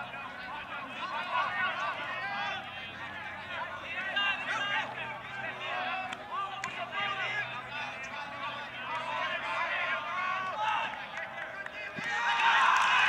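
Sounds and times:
voices calling out and talking: 0.0s - 13.0s.

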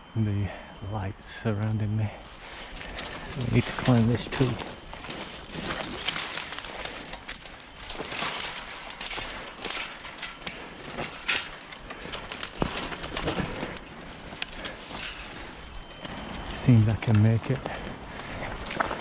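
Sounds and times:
branches rustling and snapping: 2.2s - 19.0s
branches scraping against camera: 2.2s - 19.0s.

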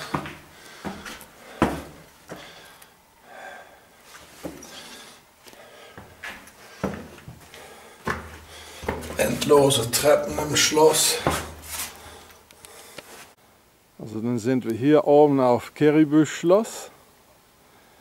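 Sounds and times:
footsteps on stone stairs: 0.0s - 2.8s, 4.1s - 12.3s.

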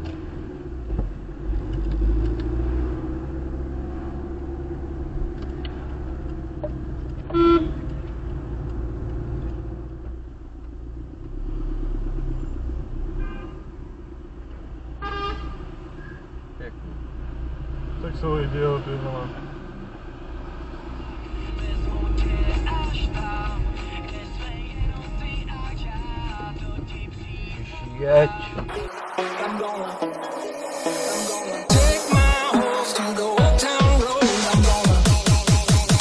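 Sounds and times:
car engine and tyre rumble: 0.0s - 29.2s
car horn toot: 7.3s - 7.8s, 13.2s - 13.7s, 15.0s - 15.6s
brief pitched sound: 28.7s - 33.0s.

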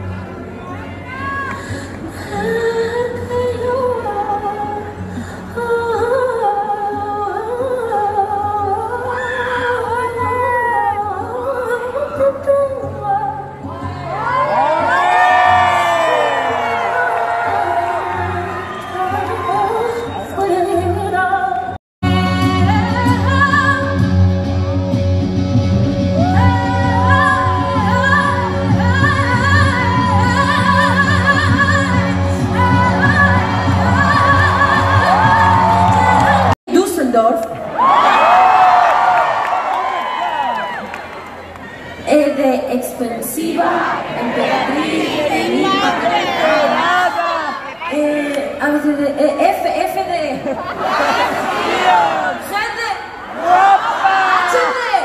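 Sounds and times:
woman singing into microphone: 1.6s - 13.8s, 16.6s - 24.0s, 26.2s - 36.5s
band bass: 22.0s - 36.5s.

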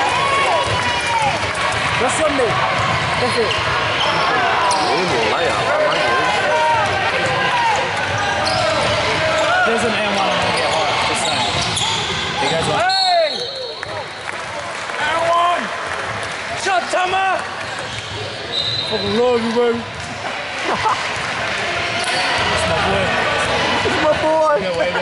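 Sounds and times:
voices echoing in hall: 0.0s - 25.0s
basketball bouncing: 0.6s - 3.9s
sneakers squeaking on floor: 7.9s - 14.0s, 17.6s - 19.4s
referee's whistle: 11.2s - 13.8s, 18.5s - 19.2s.

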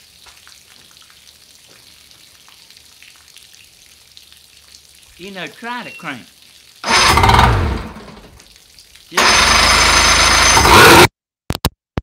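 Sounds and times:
outboard motor starter cranking: 6.8s - 8.4s, 9.2s - 11.1s.

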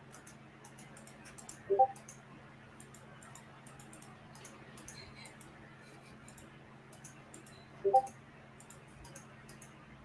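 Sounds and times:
computer mouse clicks: 0.0s - 2.2s, 2.8s - 5.6s, 6.2s - 9.8s
faint steady hum: 0.0s - 10.0s.

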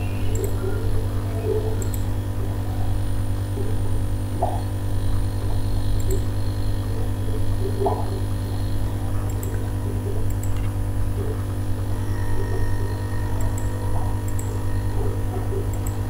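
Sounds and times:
low electrical mains hum: 0.0s - 16.0s
faint clicks: 1.8s - 2.0s, 9.3s - 9.6s.

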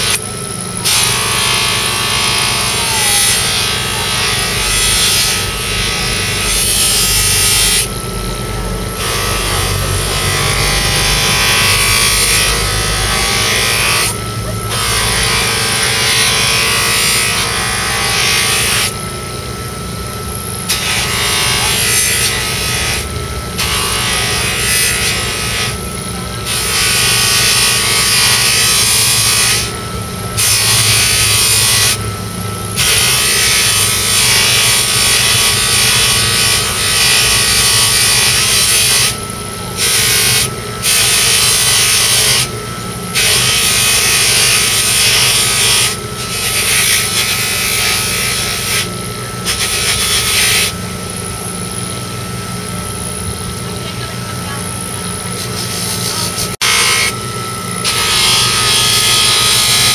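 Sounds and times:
grinder motor hum: 0.0s - 59.9s.

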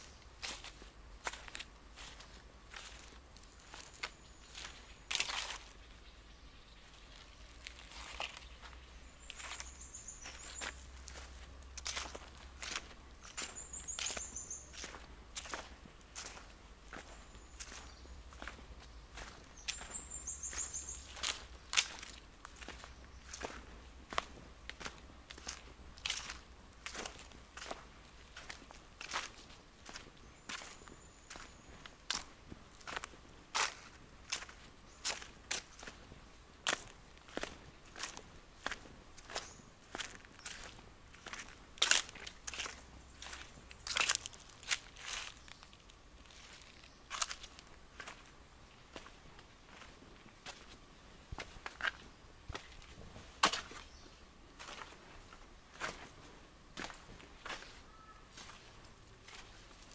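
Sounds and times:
footsteps crunching on dry leaves: 0.0s - 59.9s.

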